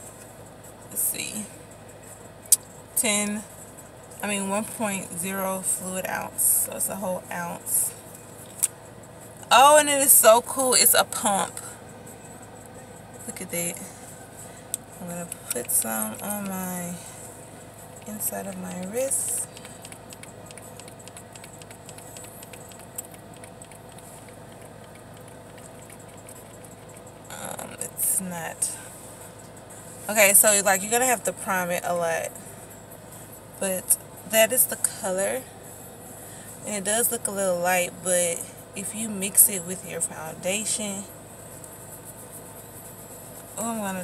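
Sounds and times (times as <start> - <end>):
car cabin hum: 4.1 - 28.8
fingers rubbing cream on skin: 18.0 - 27.0.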